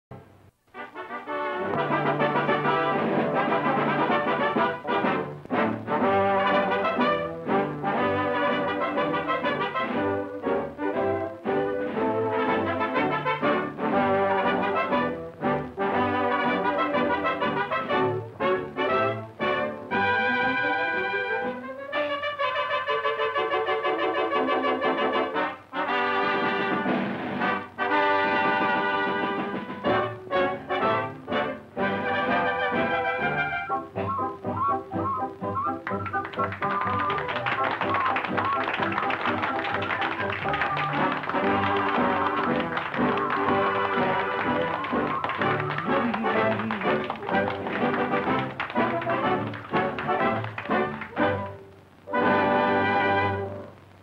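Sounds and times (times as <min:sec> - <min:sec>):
brass-led orchestra playing: 0:00.7 - 0:53.8.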